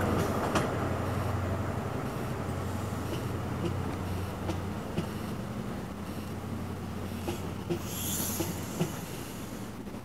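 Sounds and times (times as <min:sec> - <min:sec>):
train coaches rolling past: 0:00.0 - 0:10.0
high hiss or squeal: 0:07.8 - 0:09.6.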